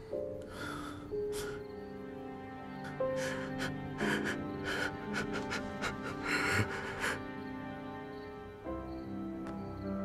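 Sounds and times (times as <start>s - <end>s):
soft sad background music: 0.0s - 10.0s
man sobbing: 2.9s - 7.4s.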